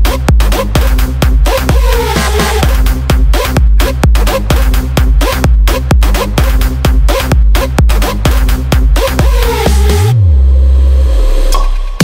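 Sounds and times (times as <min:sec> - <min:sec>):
deep swooping synth bass: 0:00.0 - 0:12.0.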